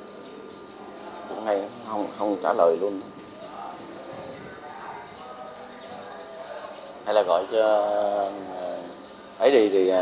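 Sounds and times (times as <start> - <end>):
faint distant voices: 0.0 - 10.0
low background noise: 0.0 - 10.0.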